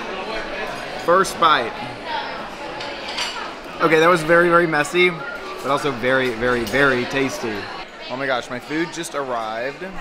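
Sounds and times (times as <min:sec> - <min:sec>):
dishes and cutlery clinking: 0:02.6 - 0:04.2, 0:05.3 - 0:07.7.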